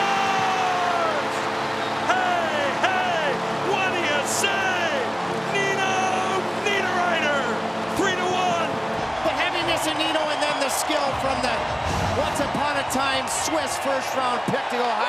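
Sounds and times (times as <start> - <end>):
arena goal horn blaring: 0.0 - 9.3
crowd cheering and whooping: 0.0 - 15.0.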